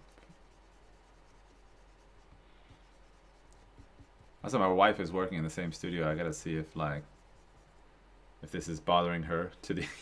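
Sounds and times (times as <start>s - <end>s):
stylus strokes on drawing surface: 0.0s - 8.6s
faint room hum: 0.0s - 10.0s.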